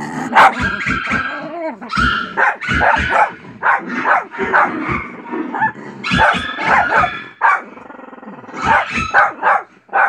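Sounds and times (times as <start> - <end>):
dogs barking on television: 0.0 - 7.8, 8.4 - 10.0
pet dog barking: 0.3 - 7.7, 8.6 - 10.0.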